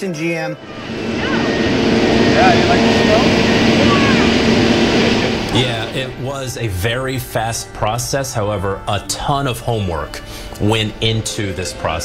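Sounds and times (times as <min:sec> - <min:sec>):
low steady hum: 0:00.6 - 0:07.0
jet engines running: 0:00.6 - 0:07.5, 0:10.2 - 0:12.0.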